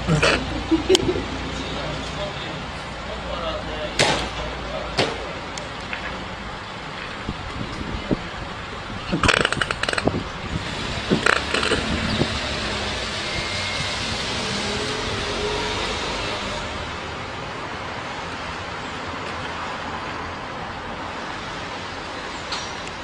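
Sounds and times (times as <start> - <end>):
road traffic rushing: 0.0 - 23.0.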